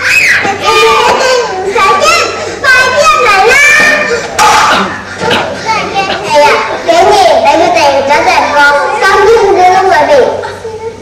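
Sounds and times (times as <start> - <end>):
young children speaking: 0.0 - 11.0.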